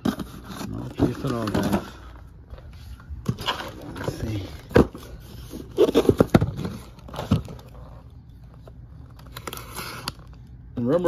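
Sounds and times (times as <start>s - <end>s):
cardboard rustling: 0.0s - 10.4s.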